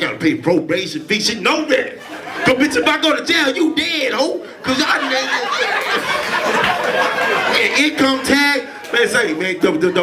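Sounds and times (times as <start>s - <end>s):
crowd chatter: 1.8s - 10.0s.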